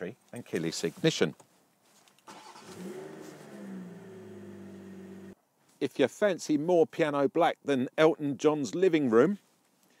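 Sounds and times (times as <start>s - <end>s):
car engine starting and idling: 2.3s - 5.4s.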